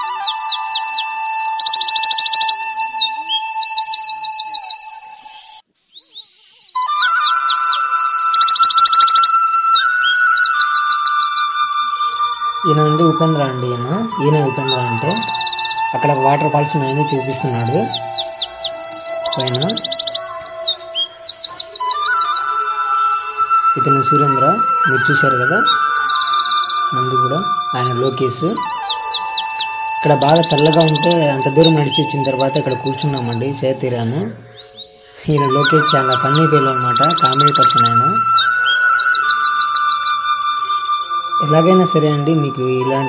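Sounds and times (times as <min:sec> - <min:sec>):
bird trilling and chirping: 0:00.0 - 0:43.0.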